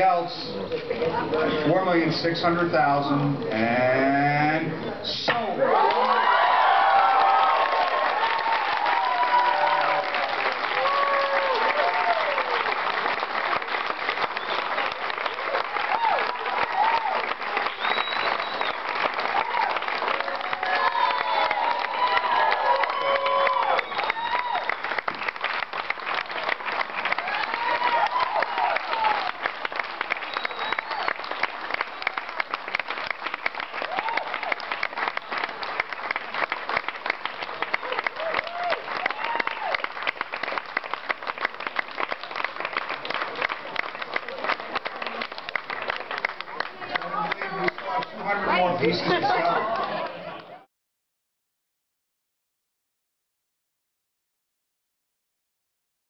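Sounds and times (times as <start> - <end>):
voices calling and cheering: 4.6 - 12.5, 46.4 - 50.7
audience applauding: 5.6 - 50.7.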